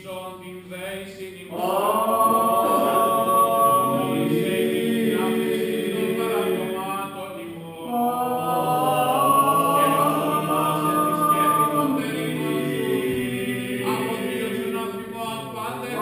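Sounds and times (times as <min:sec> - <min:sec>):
voices singing chant: 0:00.8 - 0:16.0.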